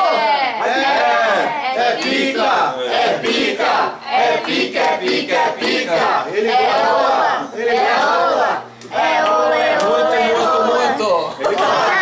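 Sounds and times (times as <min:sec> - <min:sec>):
group singing and chanting: 0:00.0 - 0:12.0
hand clapping: 0:04.4 - 0:06.0, 0:08.8 - 0:10.0, 0:11.4 - 0:11.8.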